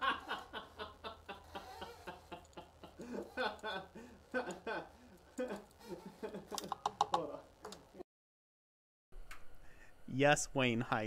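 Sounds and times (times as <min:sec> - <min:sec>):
soft chuckling laughter: 0:00.0 - 0:07.4.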